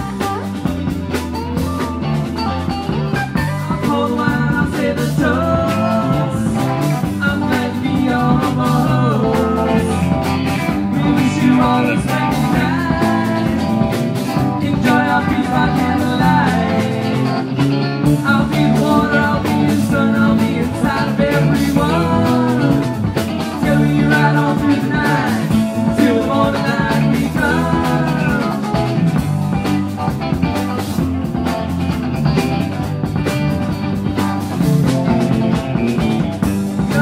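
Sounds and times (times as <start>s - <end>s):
bending lead guitar notes: 0.0s - 37.0s
live rock band playing: 0.0s - 37.0s.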